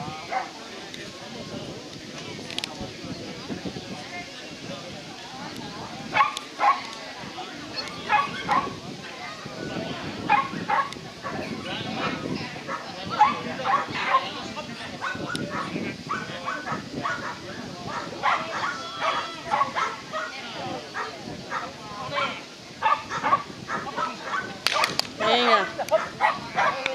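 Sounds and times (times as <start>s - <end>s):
dog barking: 0.3s - 0.5s, 6.1s - 6.9s, 8.1s - 8.7s, 10.3s - 11.4s, 12.7s - 14.3s, 15.0s - 20.3s, 21.0s - 25.0s, 25.6s - 26.8s.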